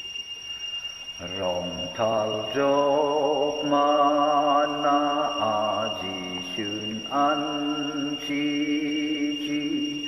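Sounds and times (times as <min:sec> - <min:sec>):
man singing a hymn: 0:01.2 - 0:10.0.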